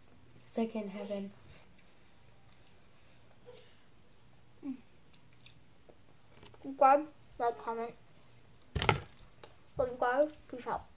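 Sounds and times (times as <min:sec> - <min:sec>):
girl speaking: 0:00.5 - 0:01.4, 0:06.6 - 0:08.0, 0:09.8 - 0:10.9
child chewing food: 0:01.5 - 0:06.3, 0:07.5 - 0:09.7.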